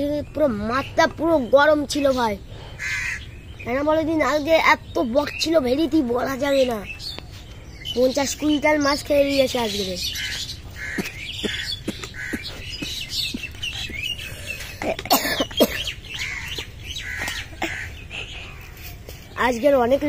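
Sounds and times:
boy's voice: 0.0 - 2.5, 3.6 - 7.1, 7.8 - 10.1, 11.0 - 16.0, 17.3 - 20.0
birds chirping: 0.0 - 20.0.

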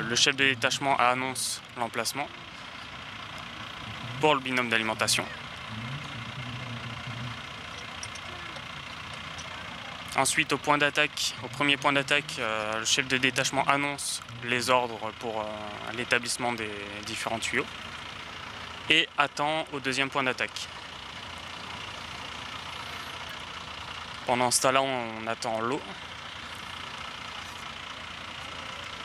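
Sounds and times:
fire engine idling: 0.0 - 29.0.

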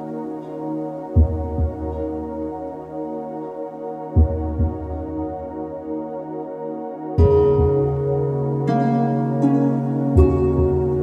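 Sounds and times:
ambient new-age music: 0.0 - 11.0.

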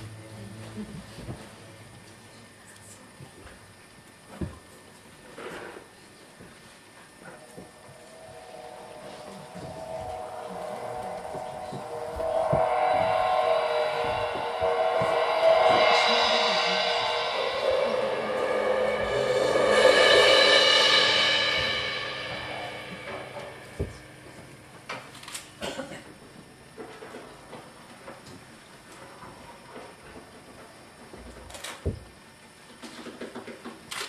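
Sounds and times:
long held instrumental tones: 7.2 - 25.4.

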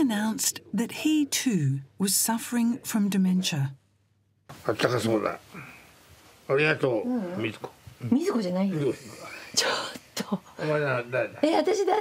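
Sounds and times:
woman talking: 0.0 - 3.8, 11.4 - 12.0
elderly man talking: 10.6 - 11.4.

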